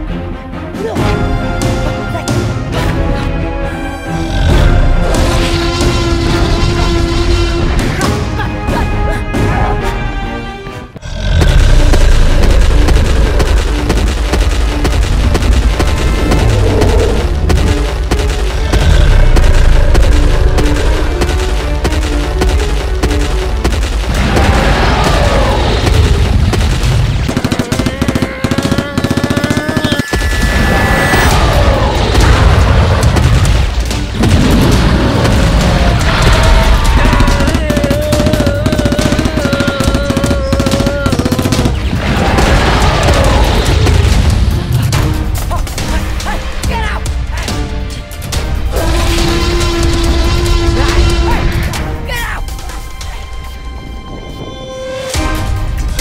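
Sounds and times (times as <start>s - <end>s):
dramatic action film music: 0.0s - 56.0s
automatic gunfire: 25.8s - 30.1s, 34.4s - 43.8s
heavy booms: 30.3s - 39.4s.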